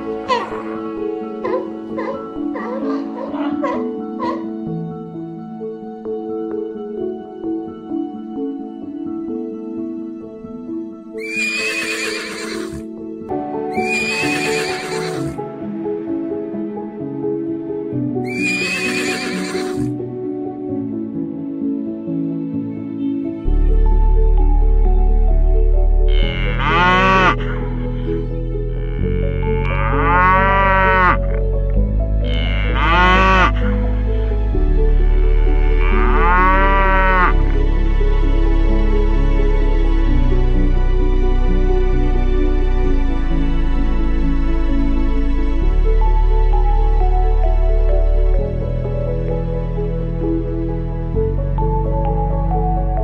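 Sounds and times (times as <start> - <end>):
soft background music: 0.0 - 53.0
horse whinnying: 11.2 - 12.8, 13.7 - 15.4, 18.2 - 19.9
cattle mooing: 13.8 - 15.4, 26.1 - 27.5, 28.8 - 31.2, 32.2 - 33.7, 35.0 - 37.4.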